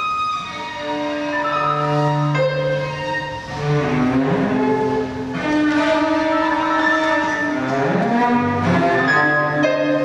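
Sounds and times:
cello sliding dissonant notes: 0.0 - 10.0.

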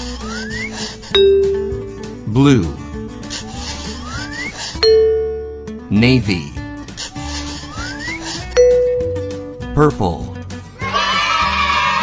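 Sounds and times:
background music: 0.0 - 12.0
bell chime: 1.2 - 2.2, 4.8 - 5.9, 8.6 - 9.7.

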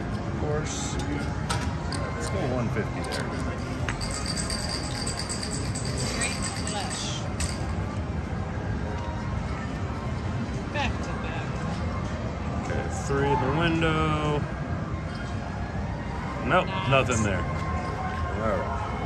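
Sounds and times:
people chattering: 0.0 - 15.2, 16.1 - 19.0.

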